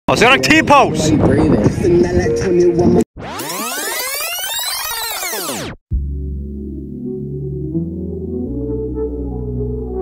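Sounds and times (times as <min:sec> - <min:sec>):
synthesizer sweep: 0:03.2 - 0:10.0.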